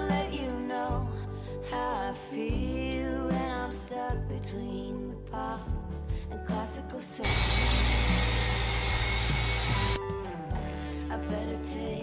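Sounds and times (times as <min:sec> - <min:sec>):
background music: 0:00.0 - 0:12.0
electric polisher whirring: 0:07.2 - 0:10.0.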